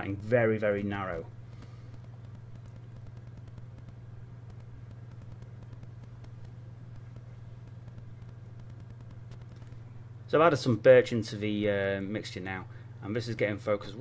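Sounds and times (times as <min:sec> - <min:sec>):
steady low hum: 0:00.0 - 0:14.0.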